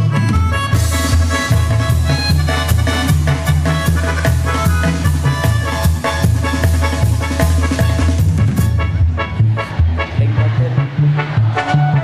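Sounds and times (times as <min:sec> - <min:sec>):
live band instrumental music: 0:00.0 - 0:12.0.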